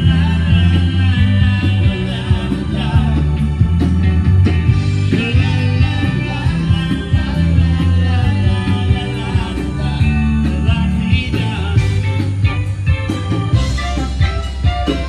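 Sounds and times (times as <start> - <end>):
person singing: 0.0 - 3.6, 5.0 - 12.5
heavy bass line: 0.0 - 15.0
live rock band playing: 0.0 - 15.0
steady drum beat: 0.0 - 15.0.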